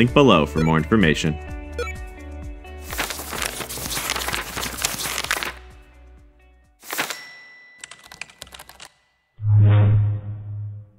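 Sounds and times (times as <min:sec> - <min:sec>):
keyboard typing clicks: 0:07.8 - 0:09.0.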